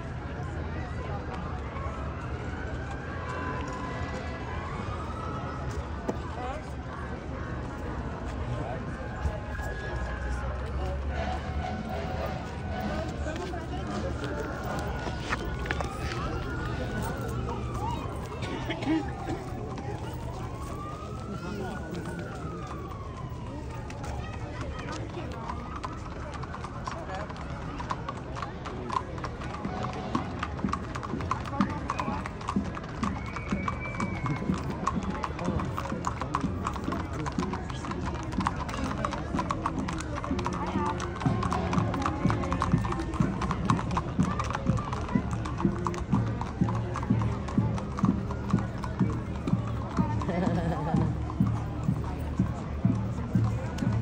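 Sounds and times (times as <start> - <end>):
voices: 0.0 - 54.0
hooves clip-clopping on asphalt: 7.6 - 54.0.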